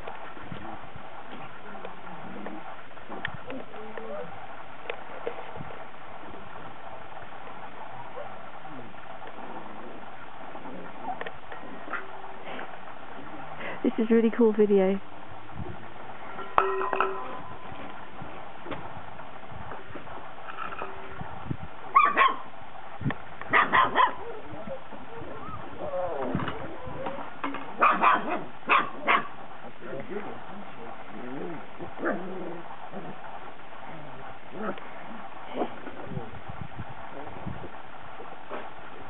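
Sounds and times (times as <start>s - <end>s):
puppies barking and yipping: 10.6s - 12.1s, 21.9s - 22.5s, 23.5s - 33.2s.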